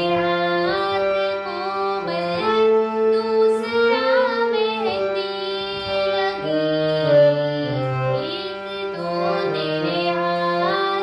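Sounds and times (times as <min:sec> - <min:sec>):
girl singing devotional song: 0:00.0 - 0:11.0
harmonium: 0:00.0 - 0:11.0.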